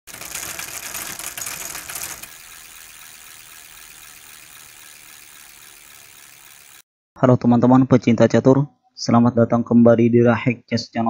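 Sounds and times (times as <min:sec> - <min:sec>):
rapid mechanical clicking: 0:00.0 - 0:06.8.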